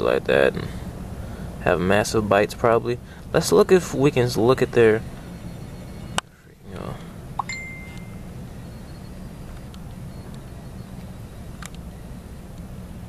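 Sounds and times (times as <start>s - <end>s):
low background rumble: 0.0s - 13.0s
high ding tone: 7.4s - 8.3s.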